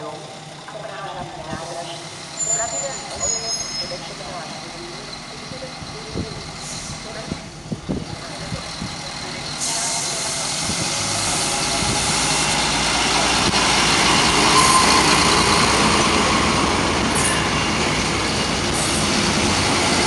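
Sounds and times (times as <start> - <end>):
diesel railcar engines under load: 0.0 - 20.0
train wheels on rails: 0.4 - 20.0.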